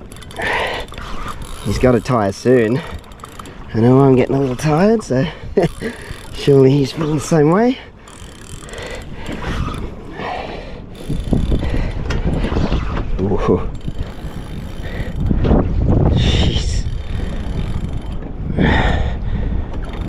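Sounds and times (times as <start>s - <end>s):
fishing reel winding: 0.0s - 10.2s, 10.9s - 12.6s, 13.7s - 15.3s, 16.8s - 18.8s, 19.8s - 20.0s
wind buffeting microphone: 0.0s - 20.0s.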